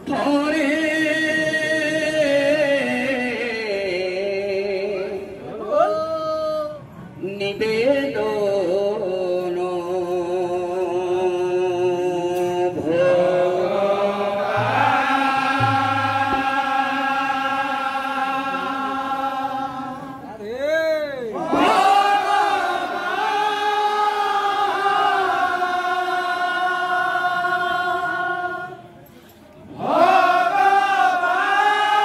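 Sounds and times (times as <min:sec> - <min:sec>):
men chanting in long notes: 0:12.8 - 0:20.4, 0:21.3 - 0:28.8.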